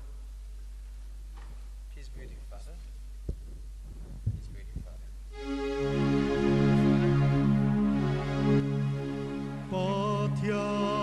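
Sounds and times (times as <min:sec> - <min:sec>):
low electrical mains hum: 0:00.0 - 0:11.0
dull thumps: 0:03.3 - 0:04.9.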